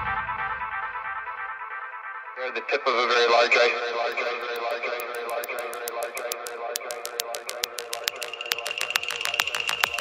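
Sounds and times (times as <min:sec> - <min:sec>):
fast hi-hat ticks: 0:04.1 - 0:10.0.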